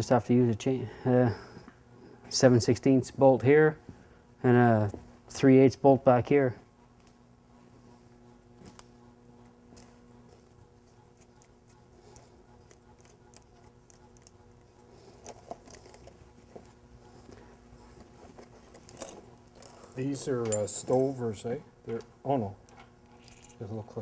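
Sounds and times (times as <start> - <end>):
steady low hum: 0.0 - 24.0.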